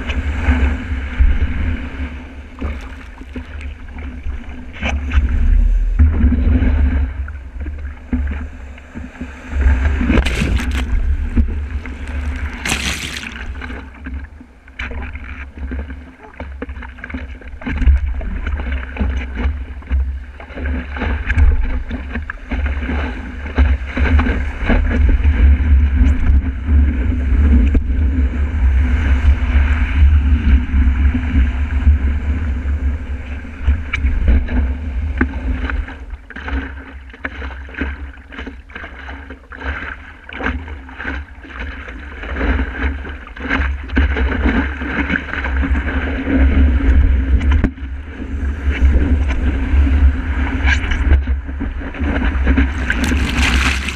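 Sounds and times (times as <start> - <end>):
water splashing against board: 2.6 - 3.7, 9.9 - 14.2, 52.6 - 53.9
rushing surf: 52.6 - 53.9.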